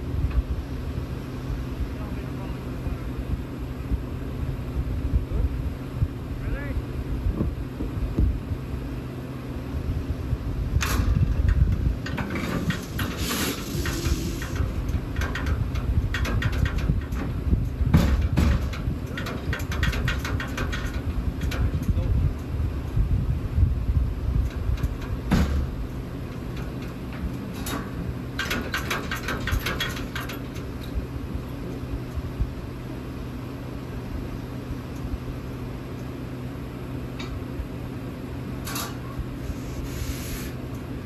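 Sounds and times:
wind rumble on microphone: 0.0 - 32.9
metallic knocks and clatter: 10.8 - 22.5, 24.4 - 31.0.

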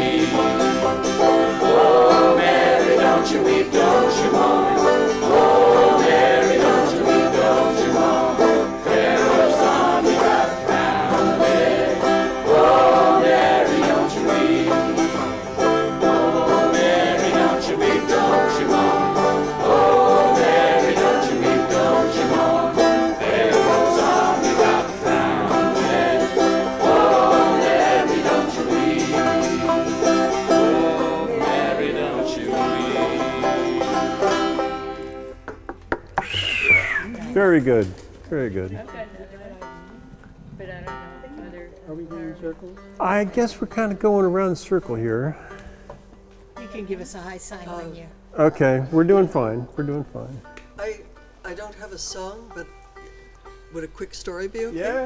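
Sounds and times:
voices singing along: 0.0 - 35.3
banjo: 0.0 - 35.6, 38.8 - 40.2
acoustic guitars strumming: 0.0 - 55.0.

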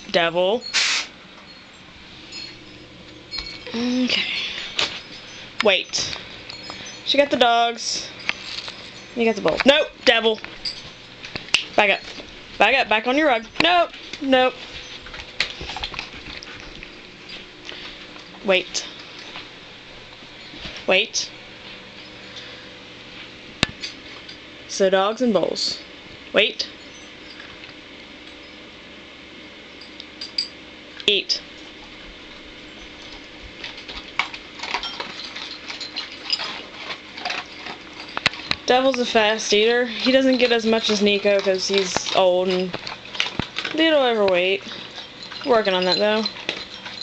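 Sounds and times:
dogs shuffling on floor: 10.4 - 18.2, 33.0 - 47.0.

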